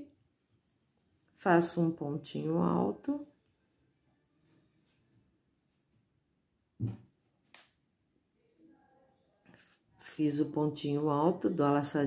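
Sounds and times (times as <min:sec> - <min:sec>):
soft thump: 0:06.8 - 0:07.1.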